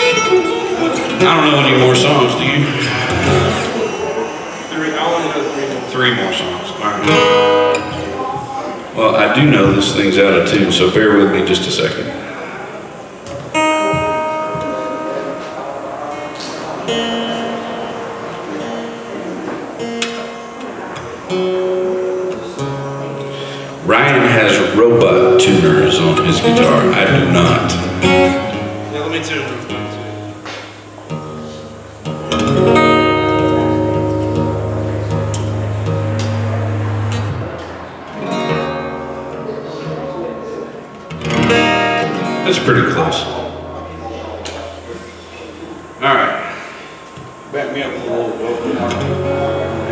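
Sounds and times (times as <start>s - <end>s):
acoustic guitar strings plucked: 0.0s - 4.0s, 7.0s - 8.6s, 13.3s - 47.8s, 48.4s - 49.9s.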